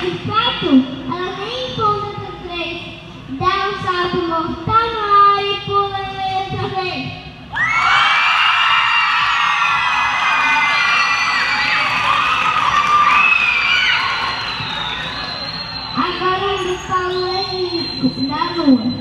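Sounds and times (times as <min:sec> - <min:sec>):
girl's voice: 0:00.0 - 0:07.2, 0:16.0 - 0:18.9
children shouting and cheering: 0:07.5 - 0:17.8.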